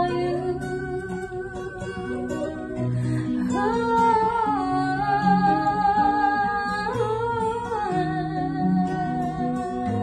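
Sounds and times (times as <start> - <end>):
fingerpicked acoustic guitar: 0.0 - 10.0.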